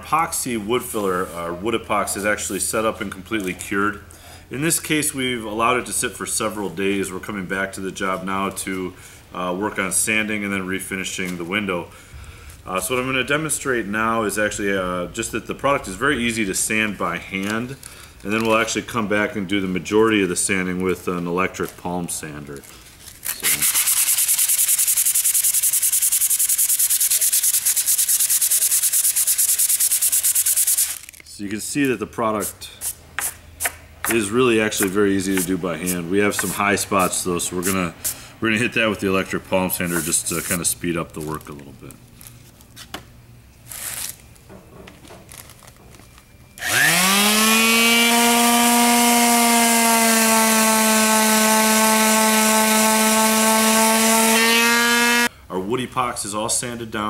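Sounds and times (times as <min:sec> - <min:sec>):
sandpaper rubbing on wood filler: 0:23.4 - 0:31.1, 0:32.4 - 0:38.2, 0:39.7 - 0:40.7
electric palm sander running: 0:46.6 - 0:55.3.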